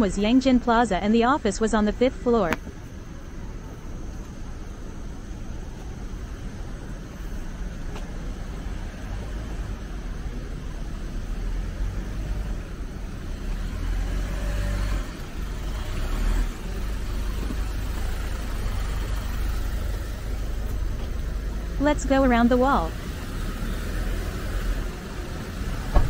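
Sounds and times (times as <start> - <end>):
low rumble of traffic: 0.0 - 26.0
truck engine running: 0.1 - 26.0.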